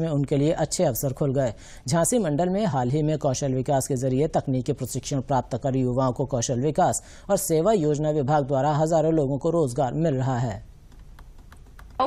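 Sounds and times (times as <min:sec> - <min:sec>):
man narrating: 0:00.0 - 0:10.7
faint irregular clicks: 0:10.8 - 0:12.0.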